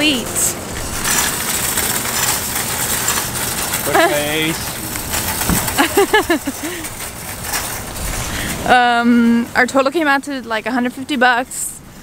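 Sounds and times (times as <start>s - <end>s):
shopping cart rolling on asphalt: 0.0s - 12.0s.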